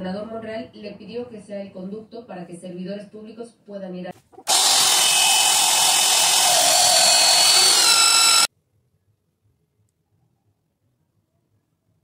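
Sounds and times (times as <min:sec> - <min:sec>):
band saw cutting metal: 0:04.5 - 0:08.5.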